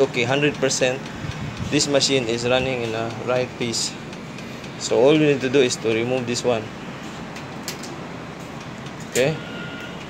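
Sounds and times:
air conditioning hum: 0.0 - 10.0.

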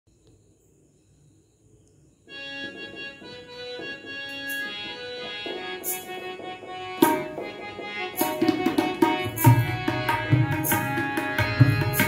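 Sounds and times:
organ-like keyboard melody: 2.3 - 12.0
tabla strokes: 8.2 - 12.0.

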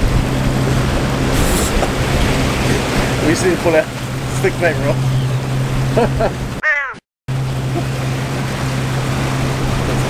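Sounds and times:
wind and water rushing: 0.0 - 6.6, 7.3 - 10.0
outboard motor running: 0.0 - 10.0.

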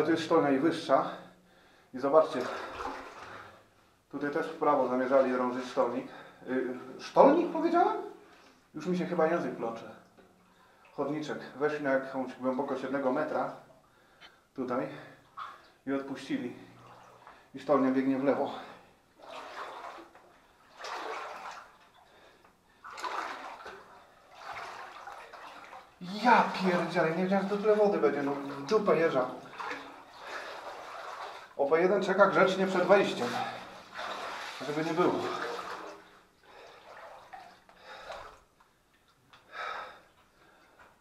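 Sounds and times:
sloshing strides through water: 2.2 - 3.8, 16.5 - 17.6, 18.5 - 38.6.

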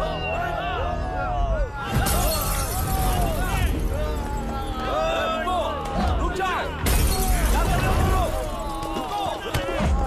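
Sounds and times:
men shouting: 0.0 - 10.0
shattering crash: 1.9 - 3.9, 6.8 - 9.5.

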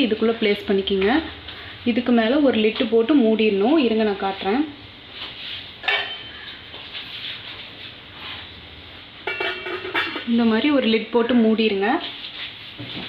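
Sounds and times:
steel lid clattering on bowl: 5.8 - 6.3, 9.2 - 10.3.

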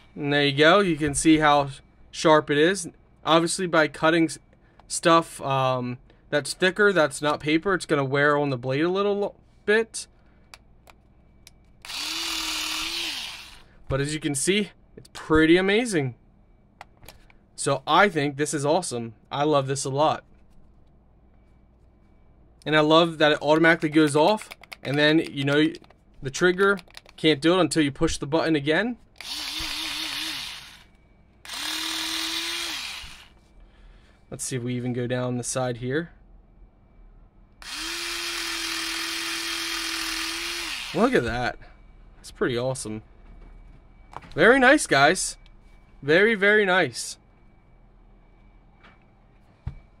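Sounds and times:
electric scissors motor whine: 11.8 - 13.7, 29.2 - 33.4, 37.6 - 41.4
blade rasping through cable: 31.5 - 33.4.

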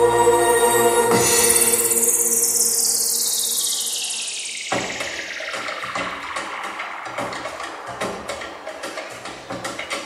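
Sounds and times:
whooshing noise sweep falling: 1.1 - 8.4.

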